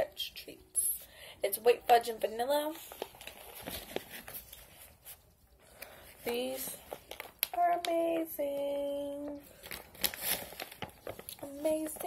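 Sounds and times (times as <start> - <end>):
plastic pouch crinkling: 2.7 - 12.0.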